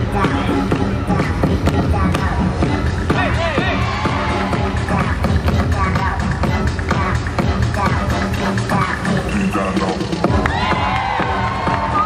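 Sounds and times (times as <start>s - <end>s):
hip-hop dance music: 0.0s - 12.0s
audience cheering and whooping: 10.3s - 12.0s.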